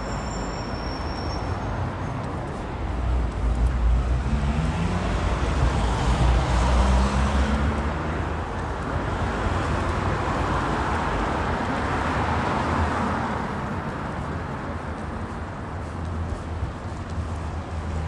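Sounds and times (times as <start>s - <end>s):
low traffic rumble: 0.0s - 18.0s
cars passing: 1.4s - 18.0s.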